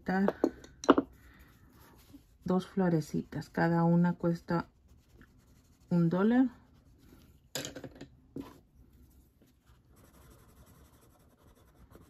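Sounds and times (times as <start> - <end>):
pencil scratching on paper: 1.8 - 7.3, 9.6 - 12.0.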